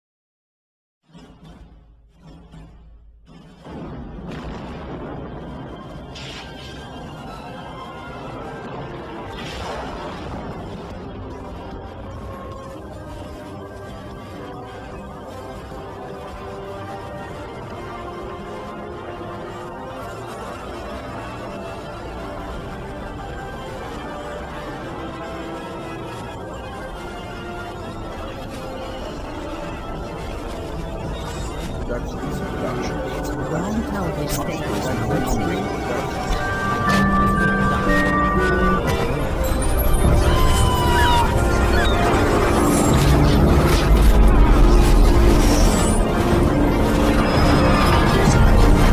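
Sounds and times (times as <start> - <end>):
sudden crashes: 3.3 - 7.6, 8.6 - 11.5.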